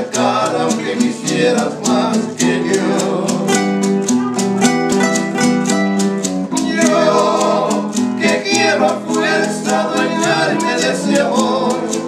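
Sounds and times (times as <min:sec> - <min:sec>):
acoustic guitars playing: 0:00.0 - 0:12.0
maracas shaken: 0:00.0 - 0:12.0.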